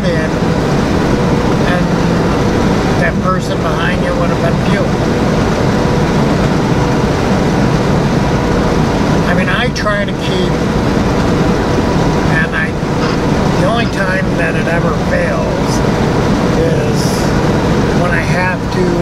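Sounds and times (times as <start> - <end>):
person speaking: 0.0 - 0.4, 1.6 - 5.1, 9.2 - 10.7, 12.3 - 17.4, 18.0 - 19.0
truck road and engine noise: 0.0 - 19.0.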